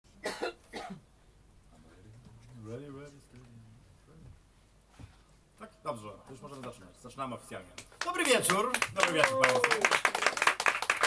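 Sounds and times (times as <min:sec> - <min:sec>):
person coughing: 0:00.2 - 0:01.0.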